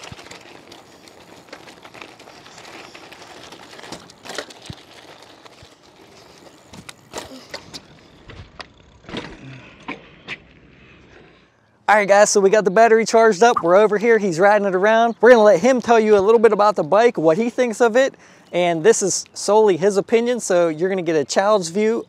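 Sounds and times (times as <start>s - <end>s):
tyres crunching on gravel: 0.0s - 9.6s.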